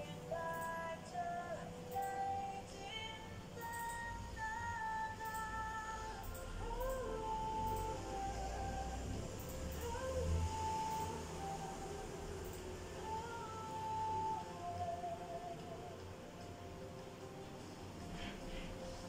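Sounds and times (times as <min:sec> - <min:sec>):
woman singing long notes: 0:00.0 - 0:16.1.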